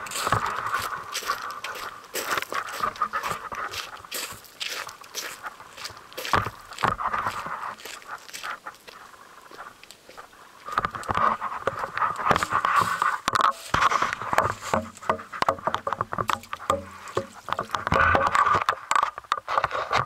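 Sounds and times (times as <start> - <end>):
footsteps crunching on leaves and gravel: 0.0 - 17.8.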